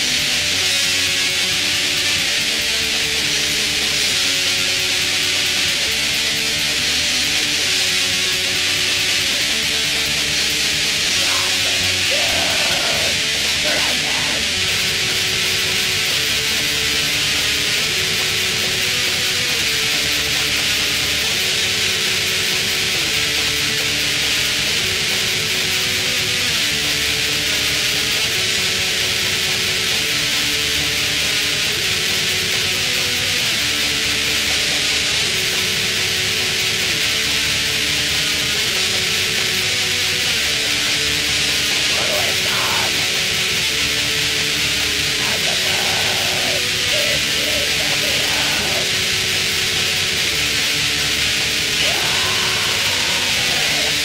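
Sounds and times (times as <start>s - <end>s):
distorted guitar chords: 0.0s - 54.0s
tape hiss: 0.0s - 54.0s
hissing treble wash: 10.6s - 15.8s, 41.6s - 54.0s.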